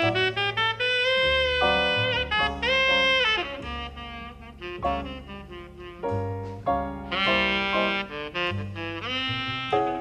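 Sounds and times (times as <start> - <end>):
low bass notes: 0.0 - 10.0
tenor saxophone playing jazz: 0.0 - 10.0.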